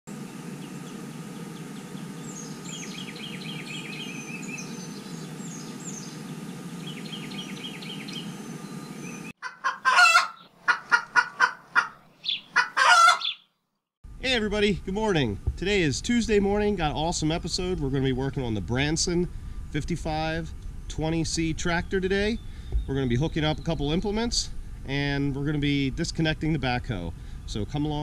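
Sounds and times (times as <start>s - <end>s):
chickens clucking and squawking: 9.2s - 13.4s
steady low rush: 14.1s - 28.0s.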